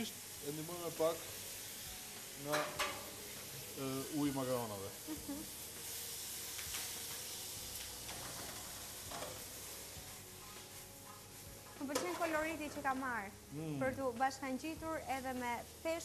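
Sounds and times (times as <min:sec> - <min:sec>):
peppers sizzling in a frying pan: 0:00.0 - 0:16.0
spatula strokes in a pan: 0:05.4 - 0:12.3.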